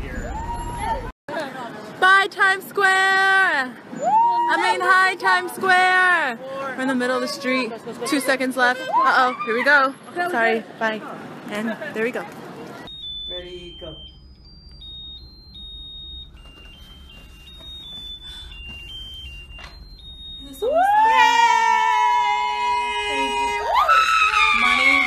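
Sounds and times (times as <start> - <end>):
tinny electronic beeping melody: 12.9 - 21.2.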